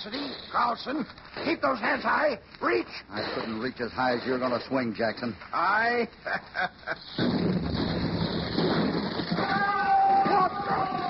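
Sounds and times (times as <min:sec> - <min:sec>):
man laughing: 0:06.2 - 0:07.2
dynamite explosion: 0:06.9 - 0:11.0.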